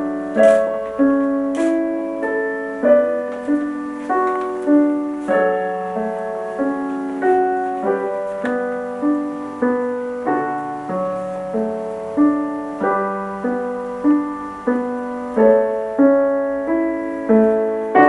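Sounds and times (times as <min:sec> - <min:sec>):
piano chords: 0:00.0 - 0:18.0.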